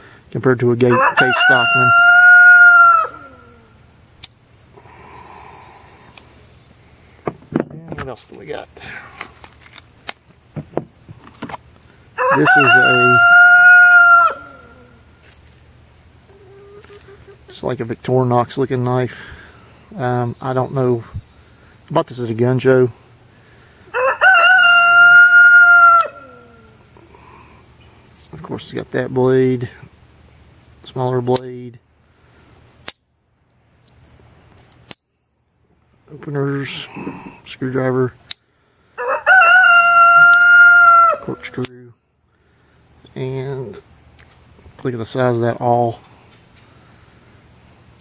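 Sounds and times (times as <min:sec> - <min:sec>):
faint insect chirr: 0:00.0 - 0:48.0
rooster crowing: 0:00.8 - 0:03.8, 0:12.2 - 0:15.1, 0:16.3 - 0:17.4, 0:23.9 - 0:26.9, 0:39.0 - 0:41.6
pocket knife blades snapping: 0:32.8 - 0:33.0, 0:34.8 - 0:35.0.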